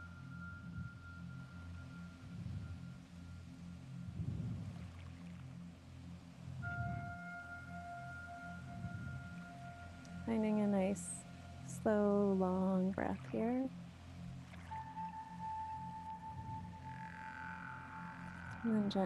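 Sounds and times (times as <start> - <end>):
low pulsing drone: 0.0 - 19.0.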